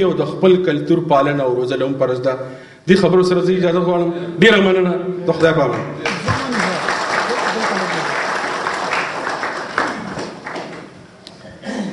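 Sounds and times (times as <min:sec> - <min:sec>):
audience applauding: 0:06.0 - 0:11.0.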